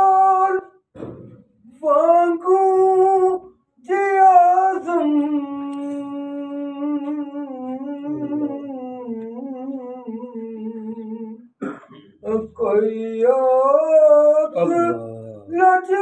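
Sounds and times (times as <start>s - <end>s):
person singing a long note: 4.0s - 11.3s.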